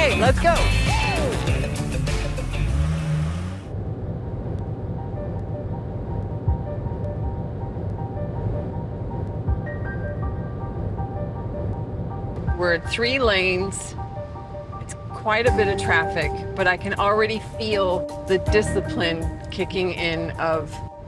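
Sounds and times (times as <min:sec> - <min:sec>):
background music: 0:00.0 - 0:03.7, 0:04.9 - 0:21.0
motorway traffic rumble: 0:01.6 - 0:21.0.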